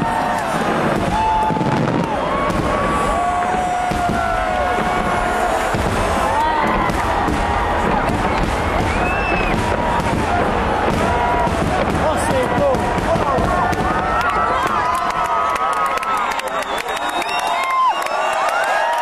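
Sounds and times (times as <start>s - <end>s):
fireworks crackling: 0.0s - 18.6s
crowd voices: 0.0s - 19.0s.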